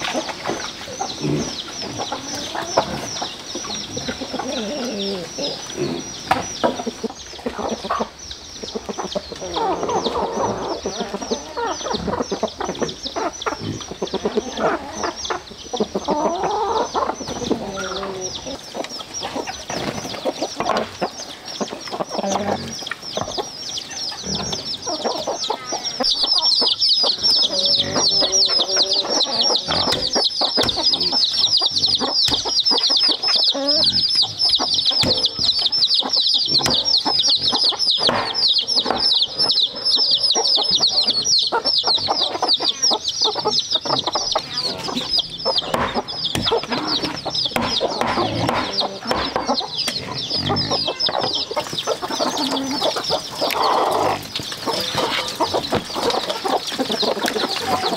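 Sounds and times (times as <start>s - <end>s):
chickens clucking: 0.0s - 57.9s
rapid high chirping: 22.8s - 57.9s.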